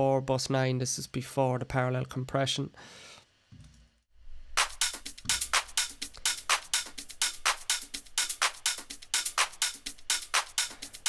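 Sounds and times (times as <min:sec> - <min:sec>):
crisp electronic drum hits: 0:04.6 - 0:10.6.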